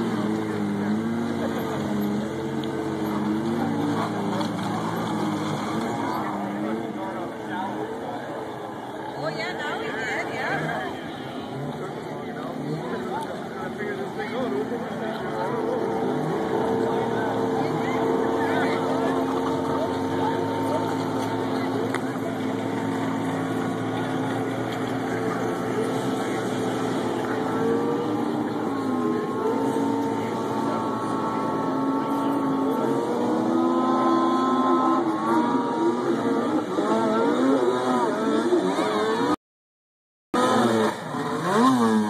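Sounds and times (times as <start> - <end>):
snowmobile engine at high revs: 0.0 - 7.9, 8.8 - 39.4, 40.4 - 42.0.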